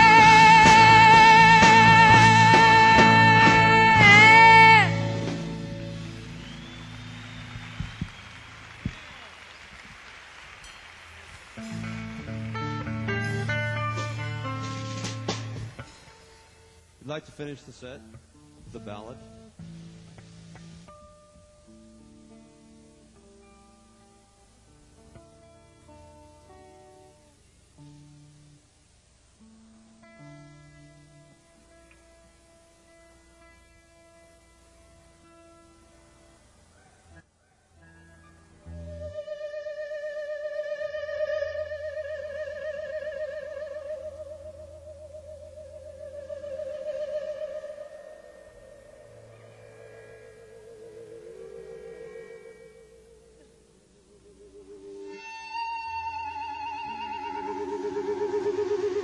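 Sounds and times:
guitar plucks: 0.0 - 8.1, 11.6 - 28.6, 29.4 - 36.6, 37.9 - 59.0
electric guitar feedback tones: 0.0 - 59.0.

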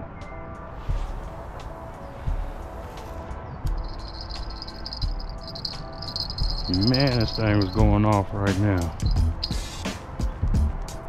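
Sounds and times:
soft music with slow beat: 0.0 - 11.0.

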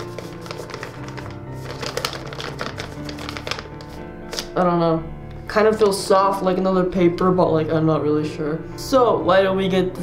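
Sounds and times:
fingers crinkling paper envelope: 0.0 - 4.5
background music with held notes: 0.0 - 10.0.

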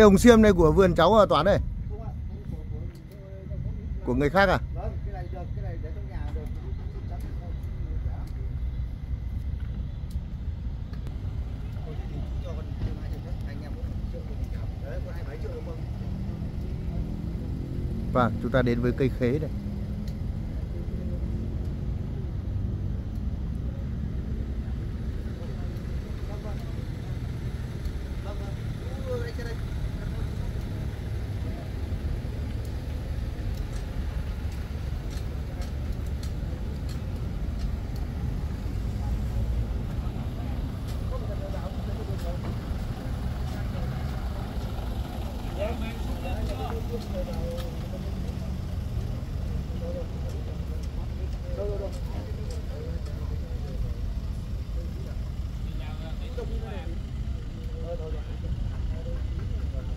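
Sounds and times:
faint voices talking: 0.0 - 59.9
low outdoor rumble: 0.0 - 59.9.

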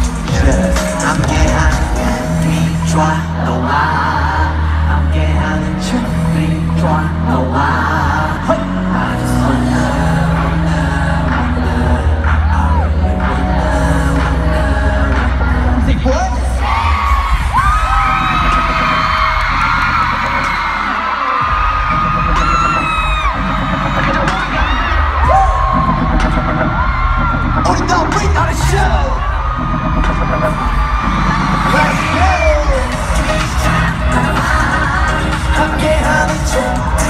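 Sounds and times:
live pop music over loudspeakers: 0.0 - 37.0
crowd screaming: 16.5 - 37.0.

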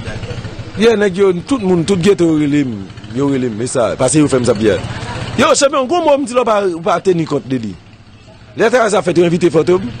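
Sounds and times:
man speaking: 8.5 - 10.0.

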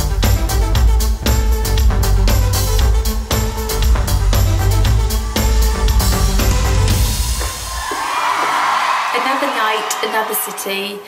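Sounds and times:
pop band backing track: 0.0 - 7.5
concert audience cheering: 4.8 - 11.0.

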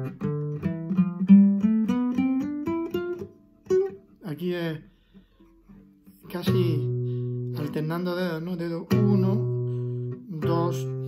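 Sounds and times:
classical guitar rising scale: 0.0 - 11.0.

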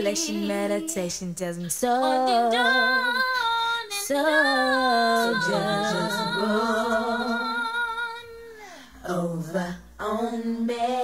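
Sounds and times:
slowed layered female vocals: 0.0 - 11.0.

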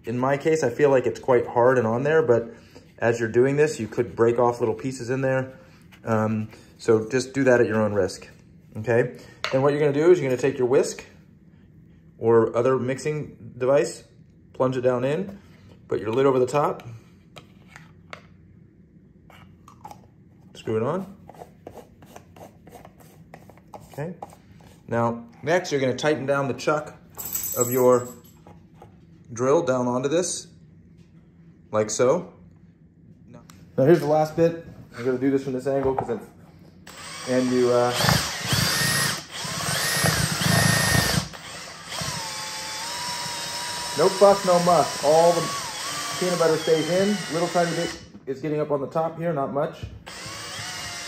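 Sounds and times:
cordless drill whining: 36.9 - 48.0, 50.1 - 51.0.

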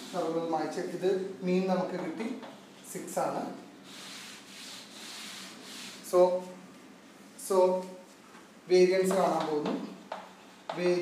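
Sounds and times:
cloth wiping chalkboard: 0.0 - 0.5, 3.8 - 6.6, 9.0 - 10.2.

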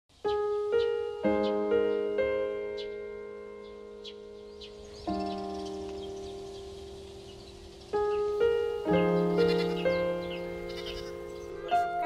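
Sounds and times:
gentle piano music: 0.1 - 12.0.

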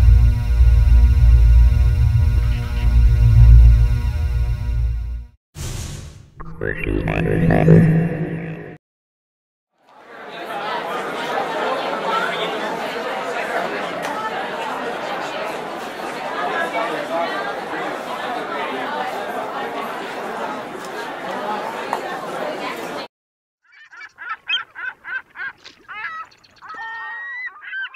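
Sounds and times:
crowd chatter: 9.8 - 23.1.

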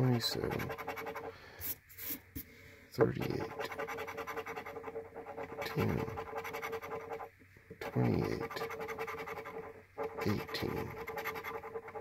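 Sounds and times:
coin scraping scratch ticket: 0.0 - 2.2, 3.2 - 12.0.

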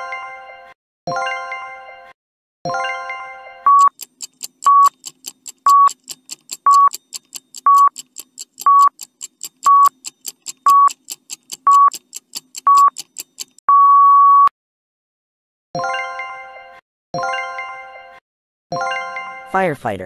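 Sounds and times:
countdown timer beeps: 2.7 - 14.5
quick ticking: 3.7 - 13.6
long beep: 13.7 - 14.5.

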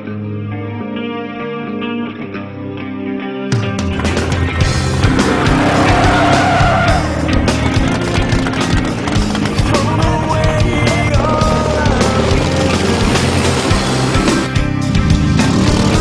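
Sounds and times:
rock music with steady beat: 0.0 - 16.0
off-road race vehicle engines: 4.0 - 16.0
tyre squeals: 5.1 - 9.2.

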